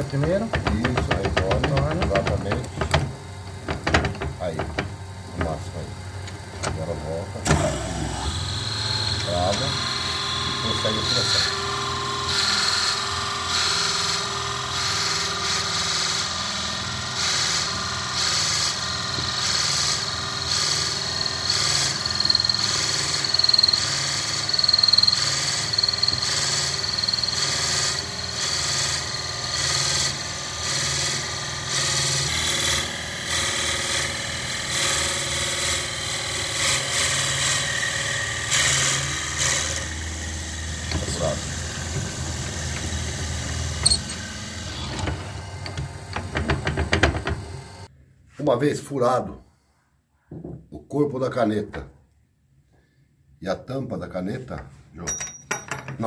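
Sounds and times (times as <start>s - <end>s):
wood lathe whining: 0.0s - 47.9s
drill bit cutting hiss: 7.5s - 34.1s.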